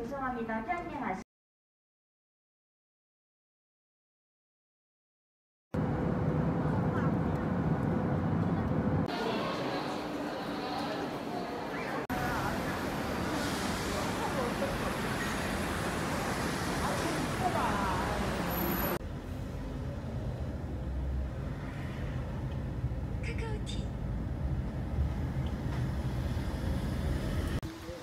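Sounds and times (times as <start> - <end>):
moving vehicle interior rumble: 5.8 - 9.1
street traffic: 5.8 - 28.0.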